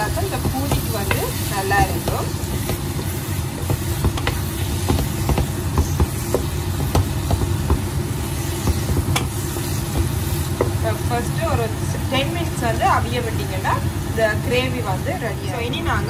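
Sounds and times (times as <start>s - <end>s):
spatula stirring thick food: 0.0s - 10.8s.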